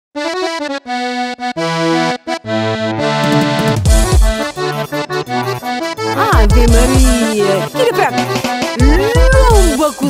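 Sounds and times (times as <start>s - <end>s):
accordion playing: 0.2s - 10.0s.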